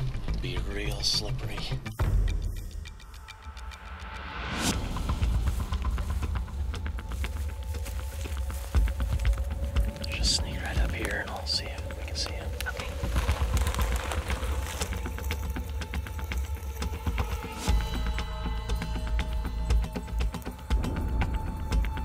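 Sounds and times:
soft whispered voices: 0:08.2 - 0:14.9.

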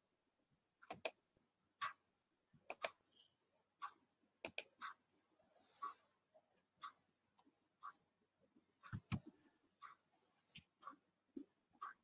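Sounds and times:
sharp computer clicks: 0:00.8 - 0:01.2, 0:02.7 - 0:03.0, 0:03.8 - 0:04.9.

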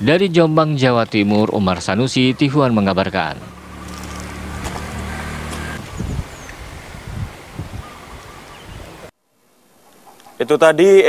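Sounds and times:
faint outdoor hiss: 0:00.0 - 0:11.0
irregular low rumbling: 0:01.5 - 0:06.8
low motor hum: 0:01.8 - 0:06.5.

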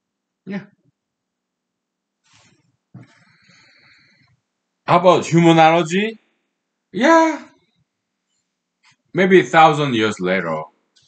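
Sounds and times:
man breathing: 0:02.4 - 0:04.3.

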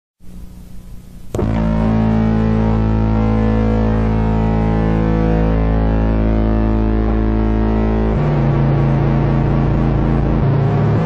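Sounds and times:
live band sustained chord: 0:01.3 - 0:11.0.

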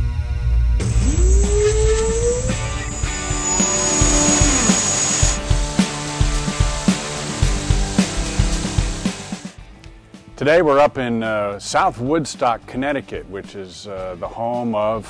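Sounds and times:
electric motor whine rising: 0:00.8 - 0:05.5
background music with beat: 0:01.0 - 0:10.4.

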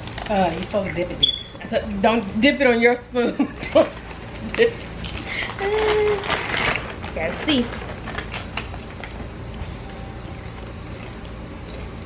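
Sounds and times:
steady low room hum: 0:00.0 - 0:12.0.

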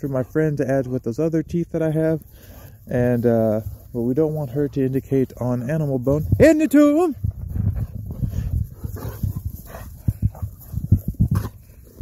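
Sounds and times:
dog breathing and sniffing: 0:02.2 - 0:02.9, 0:07.5 - 0:12.0.

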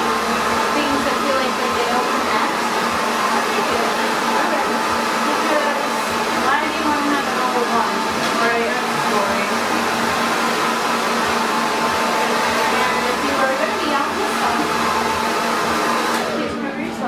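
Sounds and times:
hair dryer blowing: 0:00.0 - 0:17.0.

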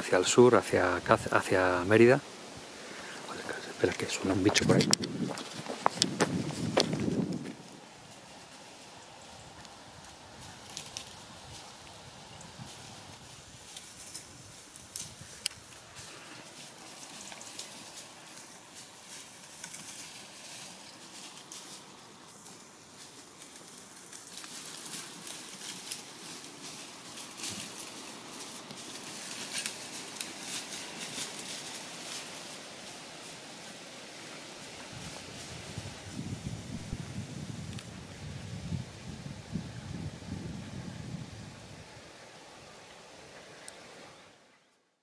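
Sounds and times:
dry grass rustling underfoot: 0:00.0 - 0:44.3.

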